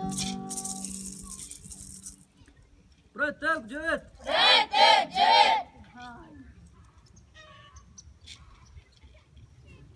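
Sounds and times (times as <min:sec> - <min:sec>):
rattle shake: 0:00.0 - 0:02.4
choir singing with strings: 0:04.2 - 0:05.7.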